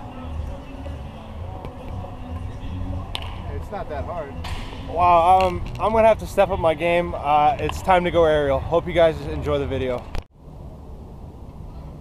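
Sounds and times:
faint voices: 0.0 - 9.5.

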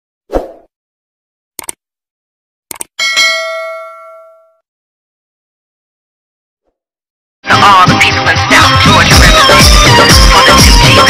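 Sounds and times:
double mouse click: 2.7 - 2.9
bell ding: 3.0 - 4.6.

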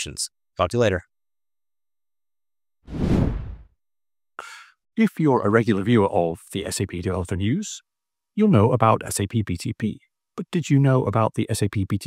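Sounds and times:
whoosh sound effect: 2.9 - 3.6.

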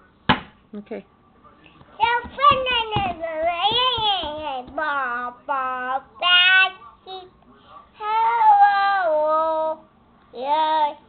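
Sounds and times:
child singing: 2.0 - 7.4, 8.0 - 11.0.

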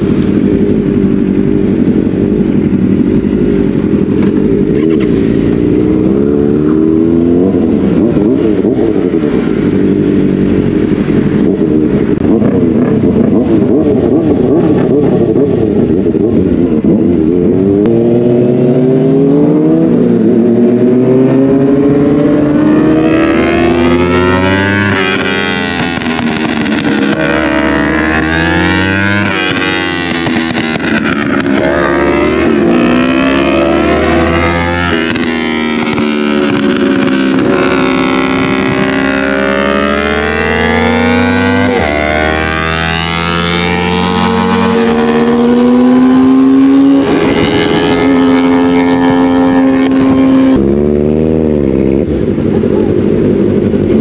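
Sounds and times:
motorcycle engines revving: 0.0 - 54.0.

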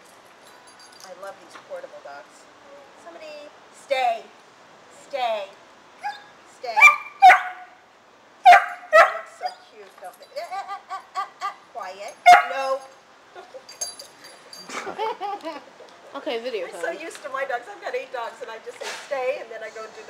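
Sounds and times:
puppies barking: 6.0 - 7.8, 8.4 - 9.6, 12.2 - 12.8.

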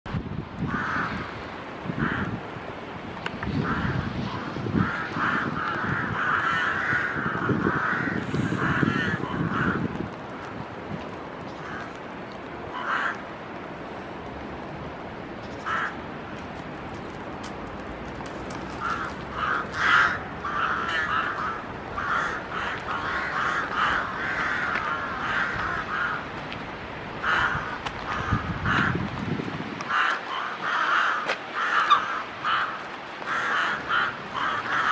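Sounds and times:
rooks cawing: 0.6 - 2.4, 3.6 - 10.0, 11.5 - 12.1, 12.7 - 13.3, 15.6 - 16.0, 18.7 - 26.4, 27.2 - 29.0, 29.8 - 34.9.

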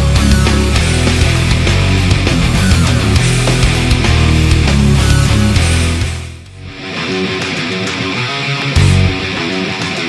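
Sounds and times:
heavy bass and drums: 0.0 - 6.8, 8.7 - 9.7
electric guitar playing notes: 0.0 - 10.0.

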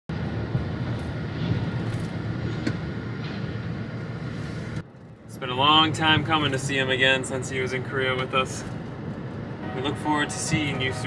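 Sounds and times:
moving vehicle rumble: 0.1 - 11.0.

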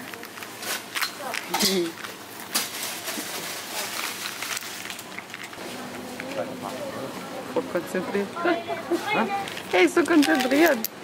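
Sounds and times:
shop background noise: 0.0 - 11.0
plastic rattle toy clicking: 9.5 - 10.9.

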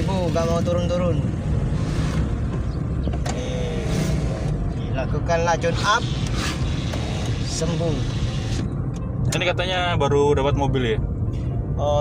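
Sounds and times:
engine and road rumble in car: 0.0 - 12.0.

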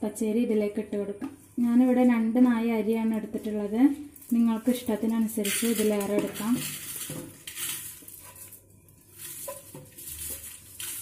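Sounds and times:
rice rattling into metal pot: 4.8 - 11.0.

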